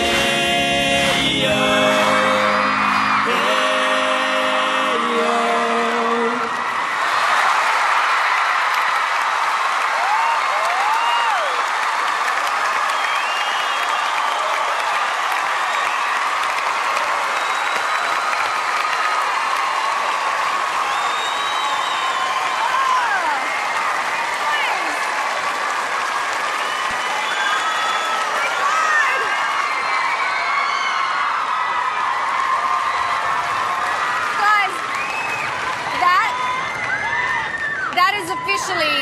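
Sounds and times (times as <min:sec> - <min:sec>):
final music chord ringing: 0:00.0 - 0:06.3
studio audience applauding and cheering: 0:00.0 - 0:39.0
shrill screams and whoops: 0:06.5 - 0:25.1, 0:26.1 - 0:39.0.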